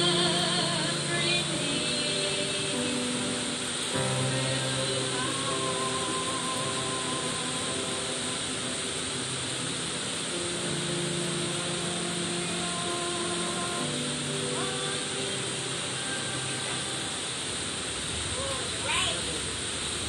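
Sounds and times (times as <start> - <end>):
soft music with held notes: 0.0 - 17.8
rain on metal roof: 0.0 - 20.0.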